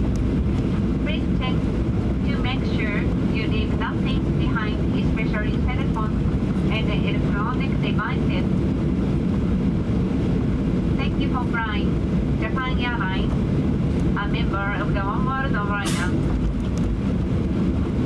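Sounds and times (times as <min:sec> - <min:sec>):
aircraft engine rumble: 0:00.0 - 0:18.0
wheels rolling on taxiway: 0:00.0 - 0:18.0.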